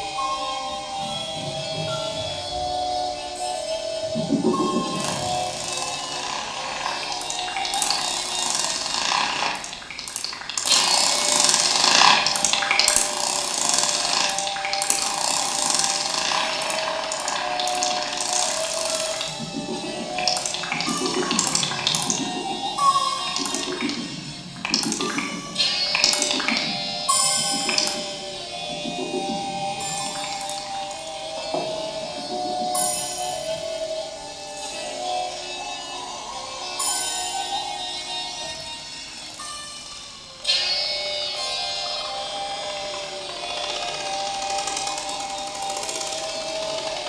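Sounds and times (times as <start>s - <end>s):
held pitched tones: 0.0s - 38.6s
processed noise and hiss: 0.0s - 47.0s.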